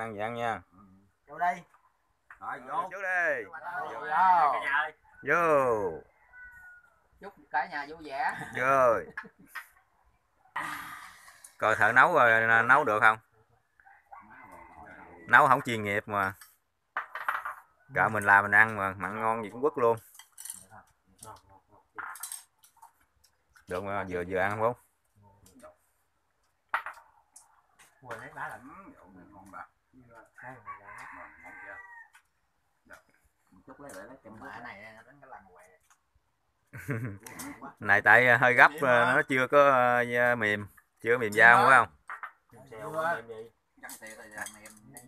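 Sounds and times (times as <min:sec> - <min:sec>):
rooster crowing faintly: 0:03.6 - 0:07.4, 0:13.6 - 0:15.8, 0:27.8 - 0:32.4.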